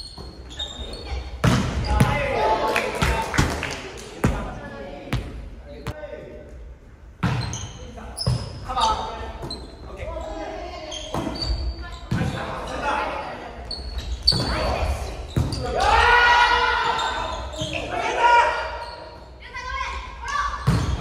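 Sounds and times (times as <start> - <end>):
shoes squeaking on wooden floor: 7.4 - 12.8.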